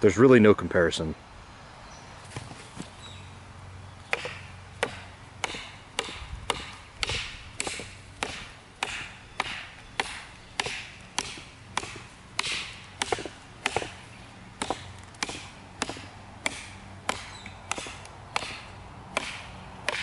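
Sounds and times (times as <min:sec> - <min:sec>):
knife chopping wood: 0:04.1 - 0:14.0, 0:14.6 - 0:20.0.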